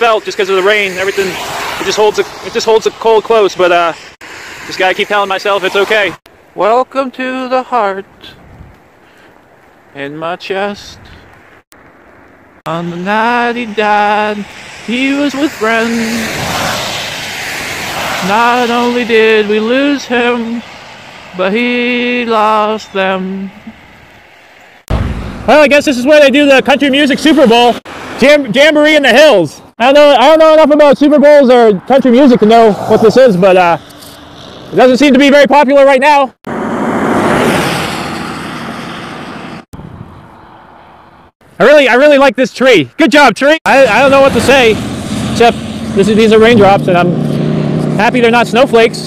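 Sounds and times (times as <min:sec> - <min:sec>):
vehicle passing on wet road: 0:00.2 - 0:06.2, 0:11.3 - 0:21.9, 0:27.1 - 0:28.2, 0:32.4 - 0:34.7, 0:36.5 - 0:41.3, 0:43.7 - 0:49.0
vehicle tyres hissing on wet road: 0:00.8 - 0:03.0, 0:03.8 - 0:06.2, 0:14.4 - 0:19.0.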